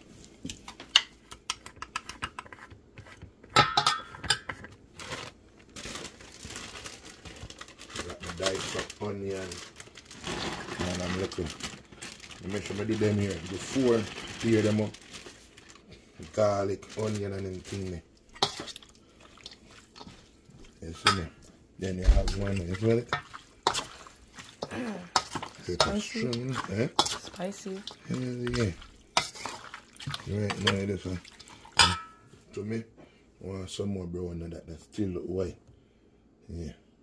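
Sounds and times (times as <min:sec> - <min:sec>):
metal bowl clinking: 0:03.6 - 0:04.7, 0:20.9 - 0:21.4, 0:22.2 - 0:32.3.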